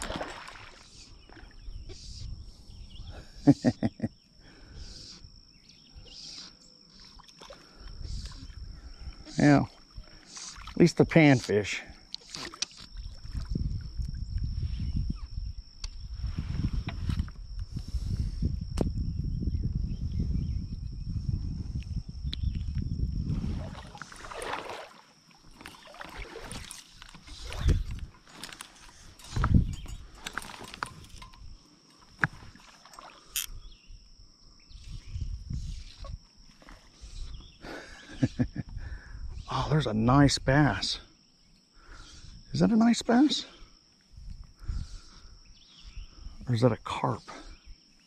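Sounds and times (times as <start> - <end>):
insect trill: 0.0 - 48.0.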